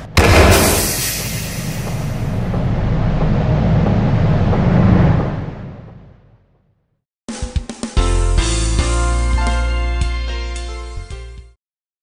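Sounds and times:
low rumble sound effect: 0.0s - 7.0s.

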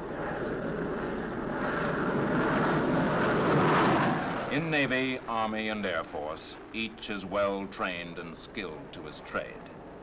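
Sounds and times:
jet engines rushing: 0.0s - 10.0s.

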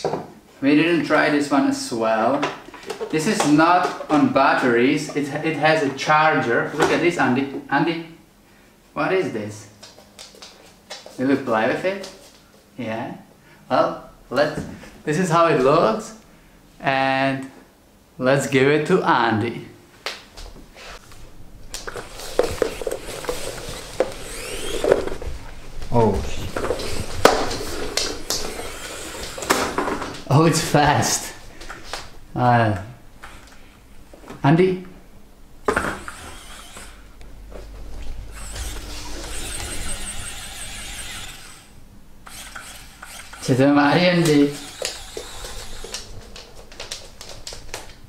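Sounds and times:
small electric motor whine: 21.8s - 25.3s, 26.2s - 29.8s, 35.7s - 37.2s, 38.0s - 43.5s, 44.3s - 46.1s.

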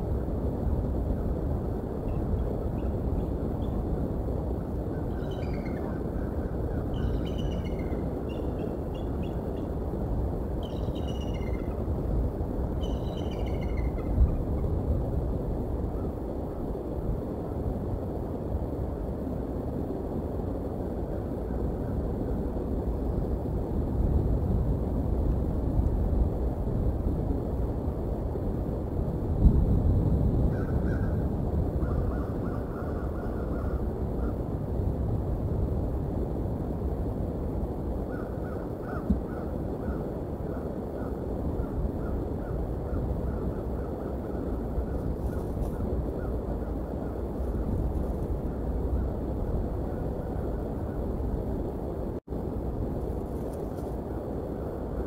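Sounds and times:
low bird calls: 4.9s - 9.7s, 10.6s - 11.9s, 12.8s - 14.6s, 31.8s - 34.4s, 38.1s - 47.2s
high falling bird chirps: 5.1s - 6.0s, 6.8s - 9.7s, 10.6s - 11.8s, 12.8s - 14.2s.

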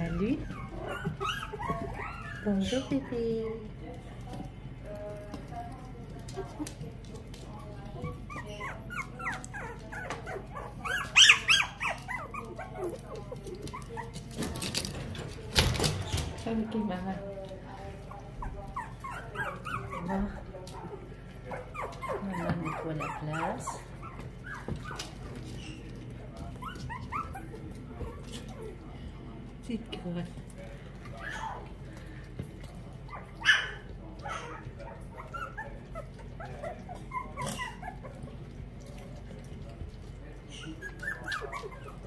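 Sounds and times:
puppies whimpering and yelping: 0.0s - 3.3s, 7.9s - 14.3s, 18.2s - 28.8s, 31.1s - 31.8s, 32.9s - 38.5s, 40.5s - 42.0s.

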